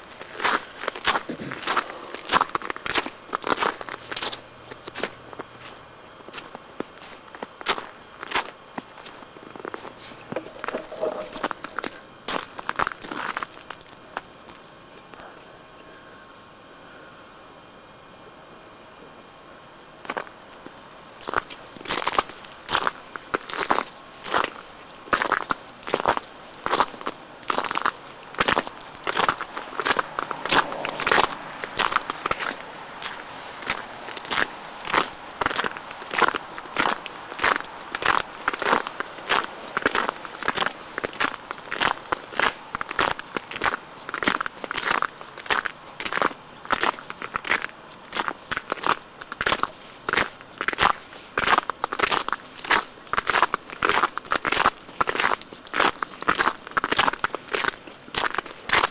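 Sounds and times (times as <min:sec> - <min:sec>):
footsteps crunching through snow: 0:00.2 - 0:14.2, 0:21.2 - 0:58.9.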